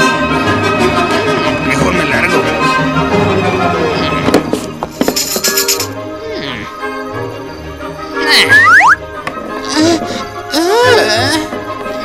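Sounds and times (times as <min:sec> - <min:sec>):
comedy show theme music: 0:05.0 - 0:12.0
rising whistle-like glides: 0:08.4 - 0:09.0.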